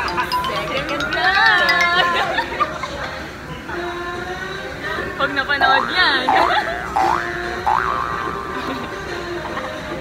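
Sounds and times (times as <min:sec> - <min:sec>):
cartoon boing sound effect: 0:05.8 - 0:08.8.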